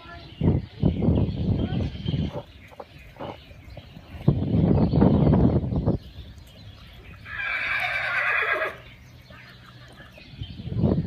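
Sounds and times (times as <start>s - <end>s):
horse whinnying: 7.2s - 8.9s.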